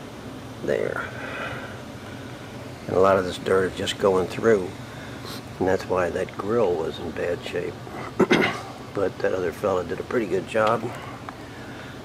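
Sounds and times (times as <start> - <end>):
air-conditioning unit humming: 0.0 - 12.0.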